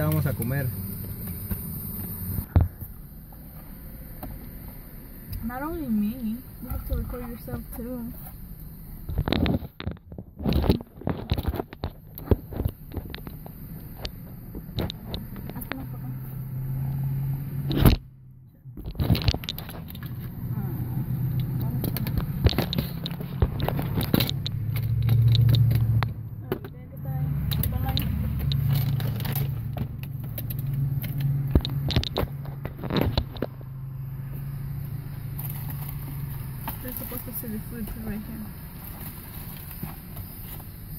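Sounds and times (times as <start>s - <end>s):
steady low hum: 0.0s - 40.9s.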